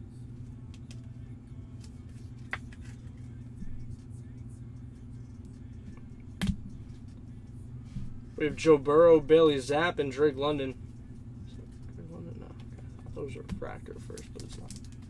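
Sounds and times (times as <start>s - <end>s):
steady low hum: 0.0s - 15.0s
trading cards clicking: 13.6s - 15.0s.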